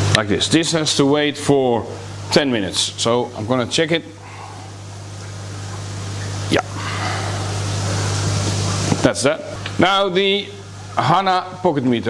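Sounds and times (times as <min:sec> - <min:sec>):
low hum of pond equipment: 0:00.0 - 0:12.0
rushing aerated pond water: 0:01.8 - 0:11.8.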